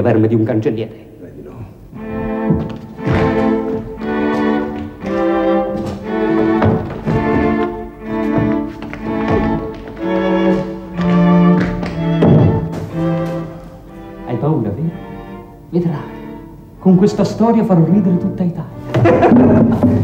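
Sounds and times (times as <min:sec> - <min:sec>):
bowed string melody: 0:01.8 - 0:20.0.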